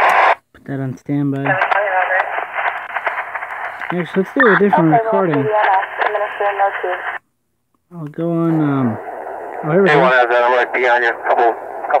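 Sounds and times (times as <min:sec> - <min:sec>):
radio voice transmission: 0:01.4 - 0:07.2, 0:08.2 - 0:12.0
man speaking: 0:03.9 - 0:05.5, 0:07.9 - 0:09.0, 0:09.6 - 0:12.0.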